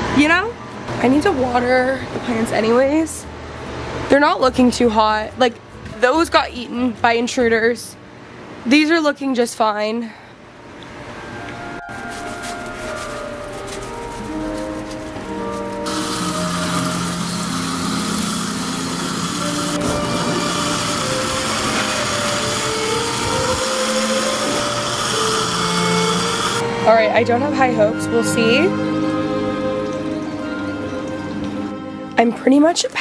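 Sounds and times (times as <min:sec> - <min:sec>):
background music with held notes: 0:10.7 - 0:33.0
hose spray nozzle hissing: 0:15.8 - 0:26.6.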